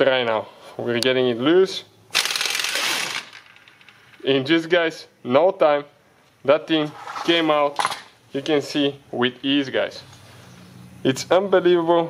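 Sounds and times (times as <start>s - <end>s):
impact wrench rattling: 2.1s - 4.2s.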